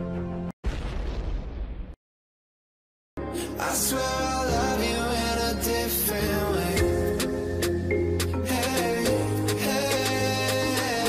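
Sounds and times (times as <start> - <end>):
loud boom sound effect: 0.6 - 2.0.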